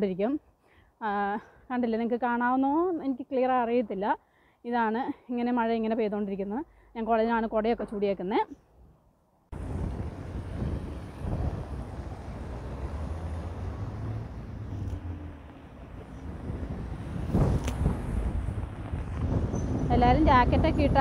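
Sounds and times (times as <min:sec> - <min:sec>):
wind buffeting microphone: 0:09.5 - 0:21.0
traffic on a wet street: 0:09.6 - 0:21.0.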